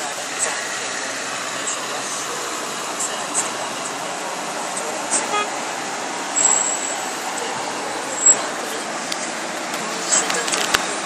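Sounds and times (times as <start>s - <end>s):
traffic noise inside moving car: 0.0s - 11.0s
high-pitched squeaks: 4.8s - 5.7s, 6.3s - 8.6s
pitched toot: 4.8s - 8.5s.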